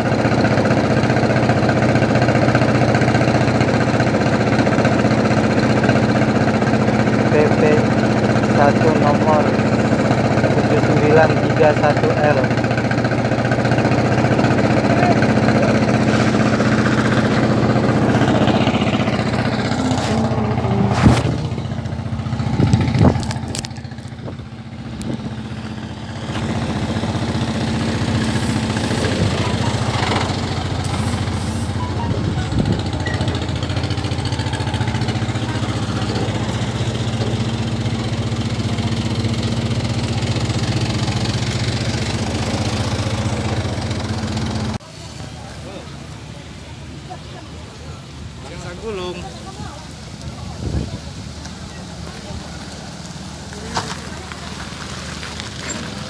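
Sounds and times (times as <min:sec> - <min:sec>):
engine idling: 0:00.0 - 0:56.0.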